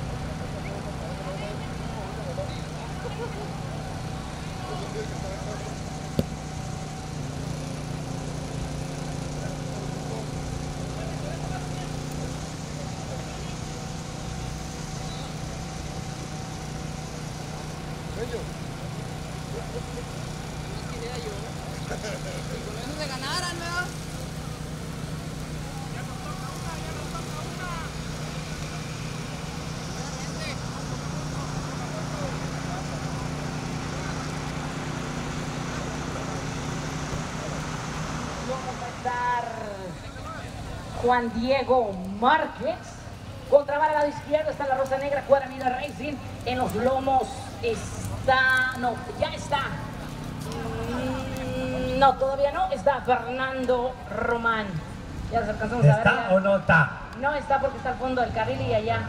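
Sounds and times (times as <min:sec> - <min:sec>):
faint voices: 0:00.0 - 0:59.0
vehicle engine idling hum: 0:00.0 - 0:59.0.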